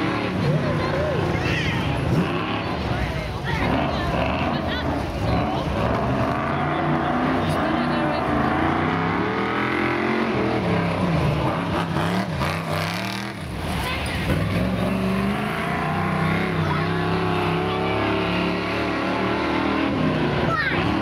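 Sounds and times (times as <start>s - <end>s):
race car engine revving: 0.0s - 21.0s.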